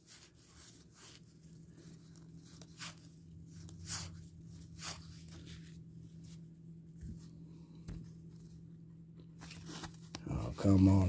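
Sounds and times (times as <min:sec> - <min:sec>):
cards rustling and sliding: 0:00.0 - 0:06.5, 0:09.4 - 0:11.0
faint low hum: 0:00.0 - 0:11.0.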